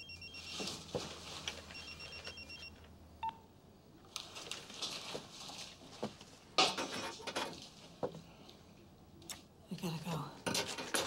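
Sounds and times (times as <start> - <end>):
rustles and clicks of movement: 0.3 - 2.9, 4.0 - 8.6.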